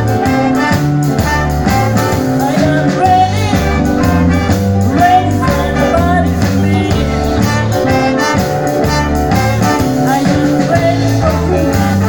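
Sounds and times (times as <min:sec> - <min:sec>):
horn section playing riff: 0:00.0 - 0:12.0
live blues band: 0:00.0 - 0:12.0.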